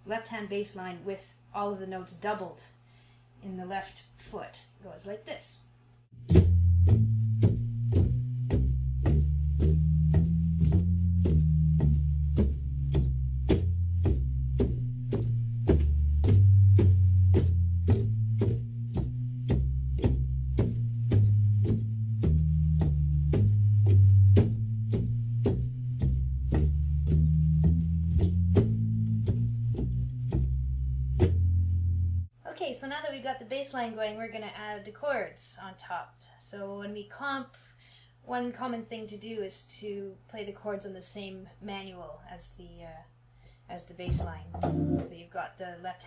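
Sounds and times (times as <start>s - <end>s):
organ walking bass line: 6.2s - 32.3s, 44.1s - 45.1s.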